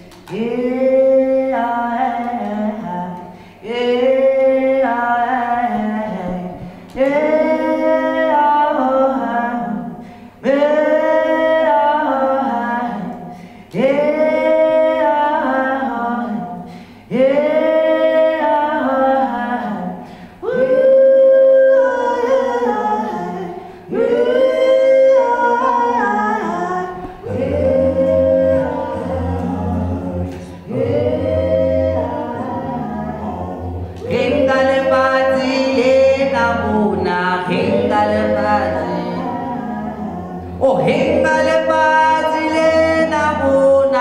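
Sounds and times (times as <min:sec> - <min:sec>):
man singing a cappella: 0:00.0 - 0:44.0
low bass vocal part: 0:19.5 - 0:44.0.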